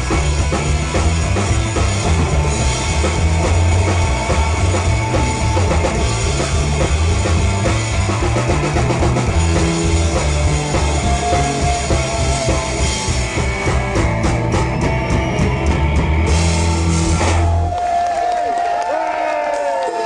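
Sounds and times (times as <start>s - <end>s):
drum kit: 0.0s - 18.3s
bass line: 0.0s - 18.4s
electric guitar: 0.0s - 18.4s.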